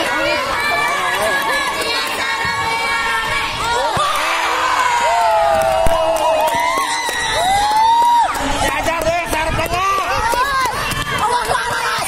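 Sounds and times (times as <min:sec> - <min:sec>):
crowd shouting and cheering: 0:00.0 - 0:12.0
long drawn-out shout: 0:03.4 - 0:08.4.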